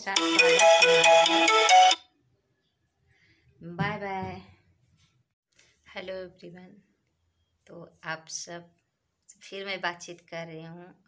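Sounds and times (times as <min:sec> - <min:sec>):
electronic ringtone tune: 0:00.0 - 0:02.1.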